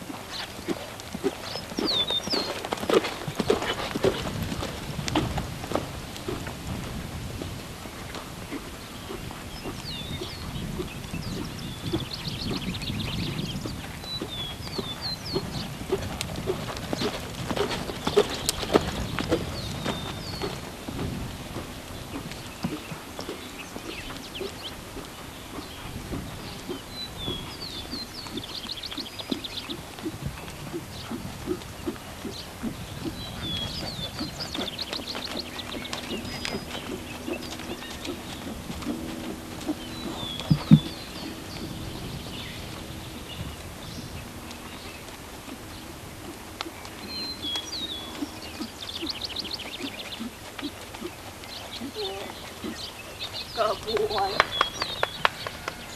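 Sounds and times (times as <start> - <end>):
horse hooves on sand: 0.0 - 55.9
low steady hum: 0.0 - 55.9
bird singing trills: 0.3 - 4.3, 8.5 - 55.9.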